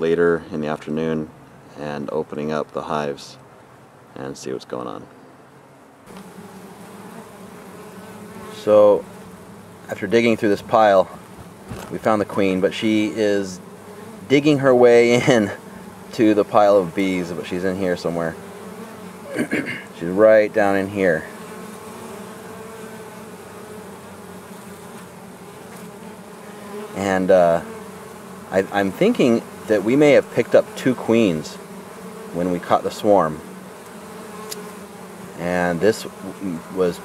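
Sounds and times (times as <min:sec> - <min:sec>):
honeybees buzzing: 0:00.0 - 0:37.0.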